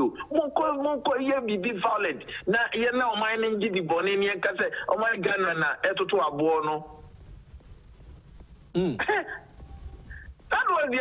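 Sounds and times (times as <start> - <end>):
low room rumble: 6.9 - 10.6
man clearing throat: 8.7 - 9.5.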